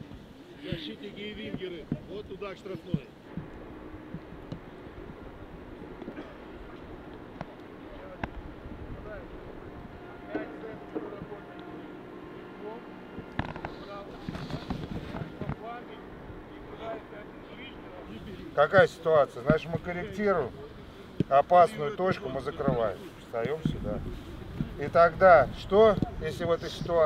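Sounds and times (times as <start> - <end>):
low background rumble: 0.0 - 27.0
distant players shouting: 2.7 - 23.7.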